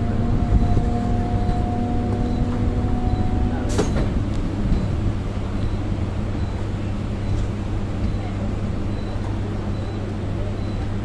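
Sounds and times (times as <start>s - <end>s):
train rumbling: 0.0s - 11.0s.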